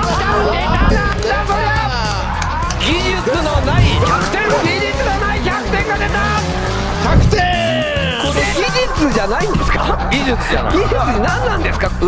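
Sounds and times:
racing car engine: 0.0s - 12.0s.

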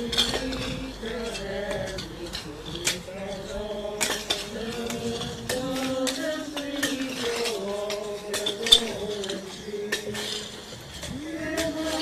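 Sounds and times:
group singing a hymn: 0.0s - 12.0s
shovels scraping stony rubble: 0.0s - 12.0s.

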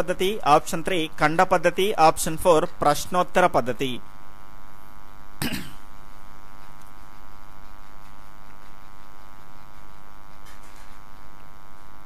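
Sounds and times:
buzzing mains hum: 0.0s - 12.0s
person coughing: 5.4s - 5.9s.

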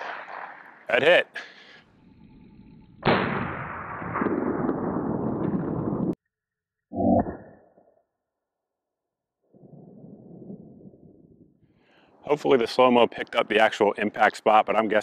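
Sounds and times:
slowed-down gunshot blast: 0.0s - 0.9s, 3.0s - 6.2s
faint outdoor background noise: 11.8s - 15.0s.

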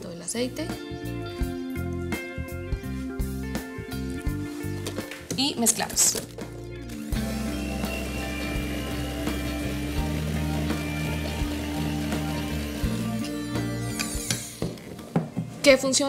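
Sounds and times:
electric hand mixer running: 6.9s - 14.9s.

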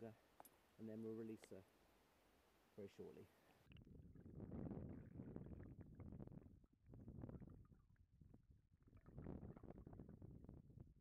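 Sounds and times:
muffled underwater river rumble: 3.7s - 11.0s.

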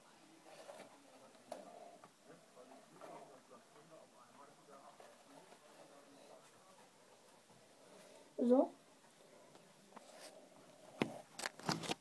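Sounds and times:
rubber mask rustling: 8.9s - 12.0s.

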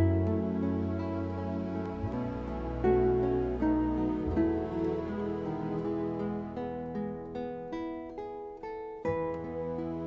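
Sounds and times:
guitar picking single notes: 0.0s - 10.0s.

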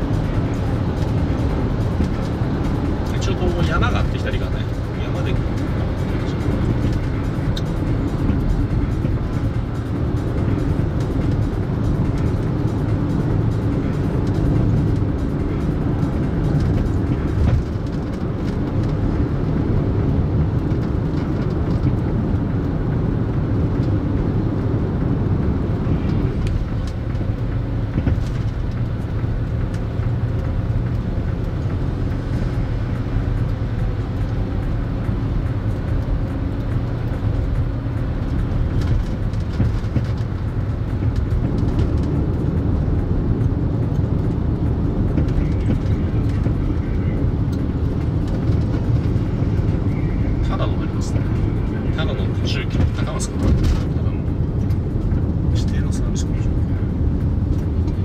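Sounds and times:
car engine drone: 0.0s - 58.0s.

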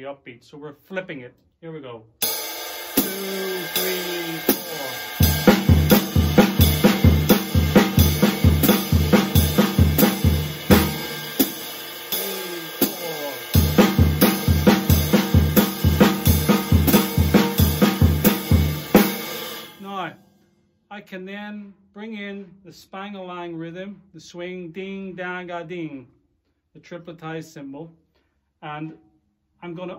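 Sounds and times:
ride cymbal pattern: 2.2s - 19.9s
hi-hat: 2.6s - 19.7s
snare drum: 2.9s - 19.8s
bass drum thuds: 5.2s - 19.1s.

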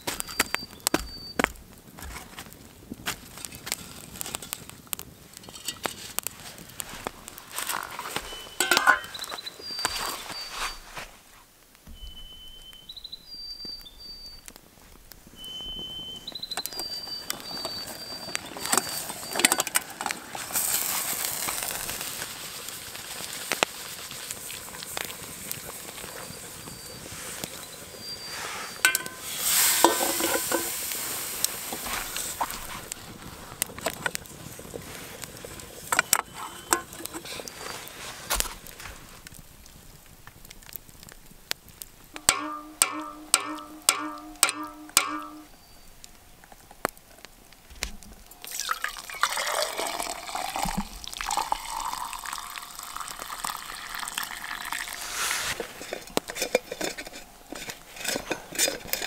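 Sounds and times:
water sloshing in pot: 8.6s - 9.2s, 28.8s - 30.9s, 48.4s - 59.0s
coffee poured into metal mug: 48.4s - 57.2s.

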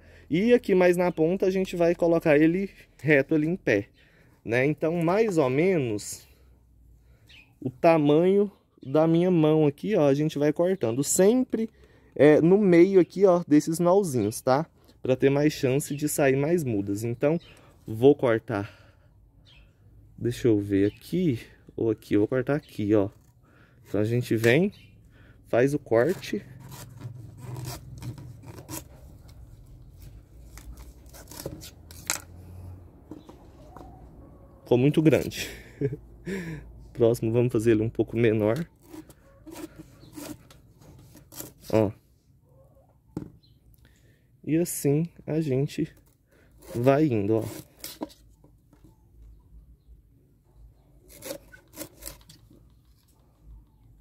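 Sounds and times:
knife sawing through plant: 25.9s - 32.1s, 38.6s - 41.8s, 46.4s - 48.1s, 51.0s - 52.4s.

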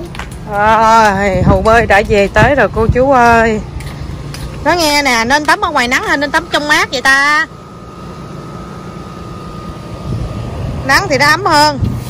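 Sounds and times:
air conditioner unit humming: 0.0s - 12.0s
faint steady whine: 0.0s - 12.0s.

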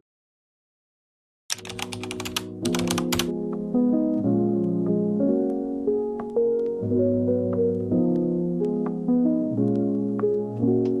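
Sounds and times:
keyboard typing clicks: 1.5s - 3.3s
background music with held notes: 1.5s - 11.0s.

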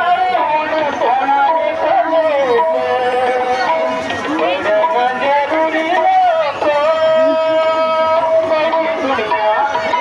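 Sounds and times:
woman singing over loudspeakers: 0.0s - 10.0s.

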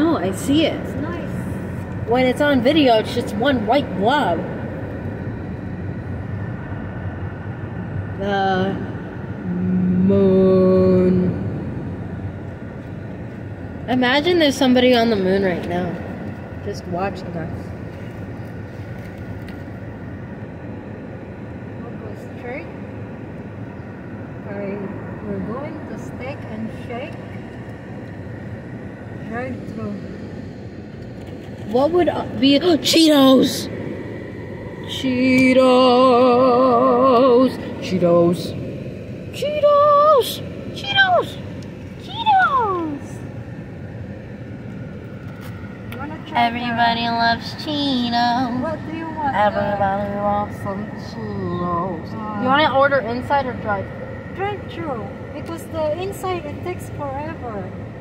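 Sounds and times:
road and engine noise in car: 0.0s - 58.0s.

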